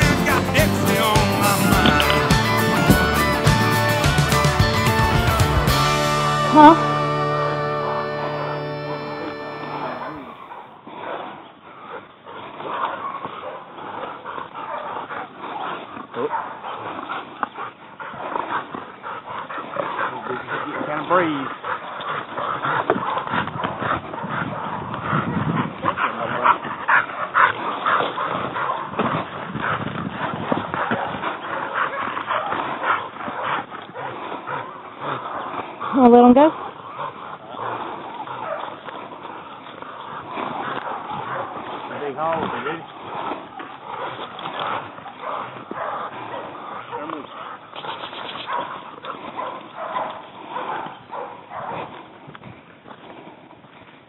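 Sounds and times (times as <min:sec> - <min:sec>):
music track: 0:00.0 - 0:10.4
dogs barking and yipping: 0:00.0 - 0:11.2, 0:11.9 - 0:52.0.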